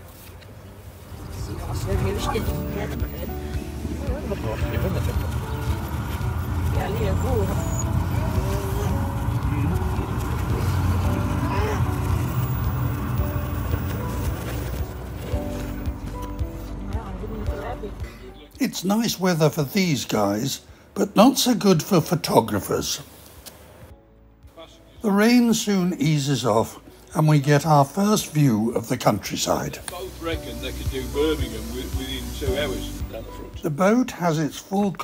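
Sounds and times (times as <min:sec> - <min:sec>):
boat engine rumbling: 0:00.8 - 0:18.5
indistinct voices: 0:01.2 - 0:13.9.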